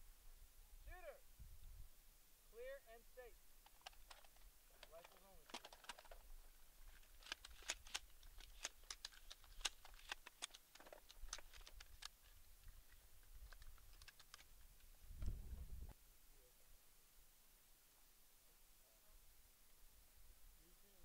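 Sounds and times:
quick light clicks and ticks: 0:03.6 - 0:15.3.

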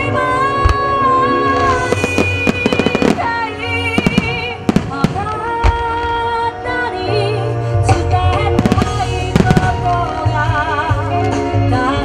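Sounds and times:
sustained music melody: 0:00.0 - 0:12.0
fireworks bursting and crackling: 0:01.5 - 0:06.2, 0:08.5 - 0:10.7.

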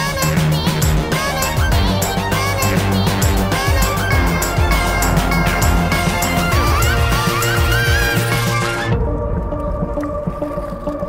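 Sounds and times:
repeating low note: 0:04.0 - 0:10.9.

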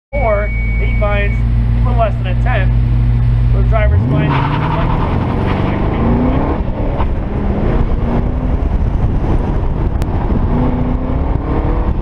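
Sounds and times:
car engine idling: 0:00.2 - 0:10.4.

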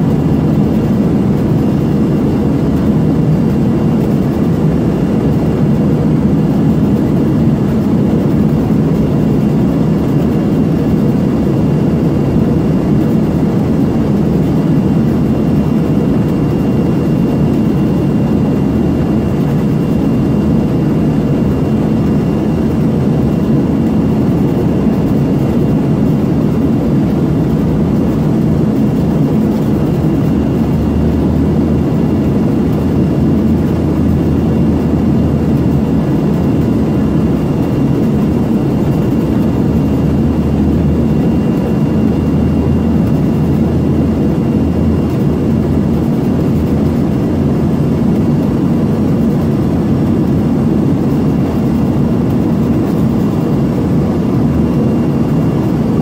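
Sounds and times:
faint steady whine: 0:00.0 - 0:56.0
jet cabin roar: 0:00.0 - 0:56.0.

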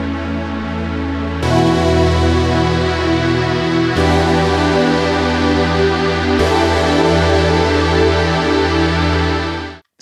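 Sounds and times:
synthesizer sustained chord: 0:00.0 - 0:09.8
deep synth bass note: 0:01.4 - 0:09.8.

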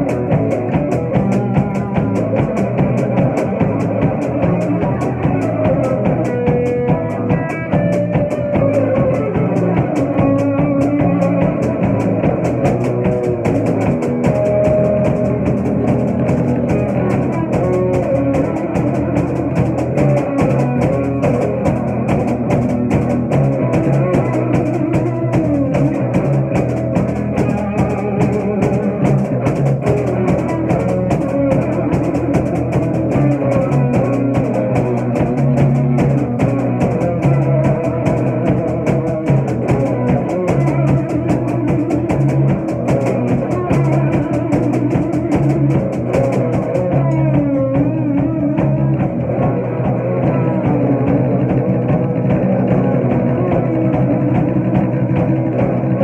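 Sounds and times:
bass guitar: 0:00.0 - 0:56.0
drums and cymbals beat: 0:00.0 - 0:56.0
electric guitar: 0:00.0 - 0:56.0.

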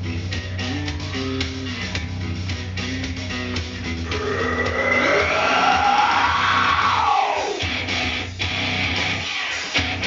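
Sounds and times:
guitar rock backing track: 0:00.0 - 0:10.0.

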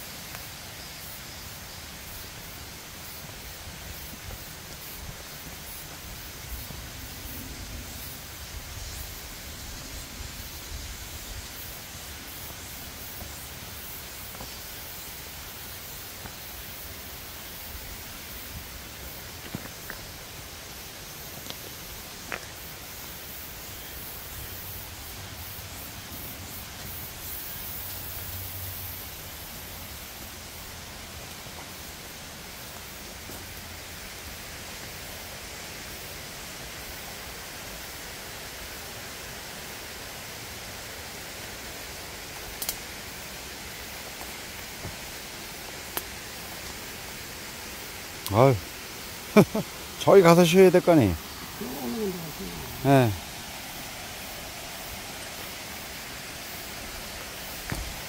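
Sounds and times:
forest background hiss: 0:00.0 - 0:58.0
faint clicks: 0:42.6 - 0:42.8.

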